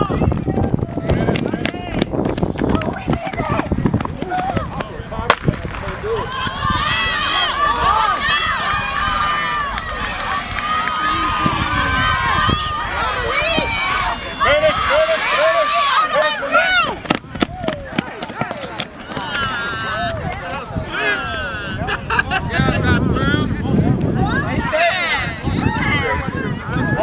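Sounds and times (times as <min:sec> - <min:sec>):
spectators shouting and cheering: 0:00.0 - 0:27.0
quick running footfalls: 0:00.2 - 0:04.9, 0:16.9 - 0:20.9.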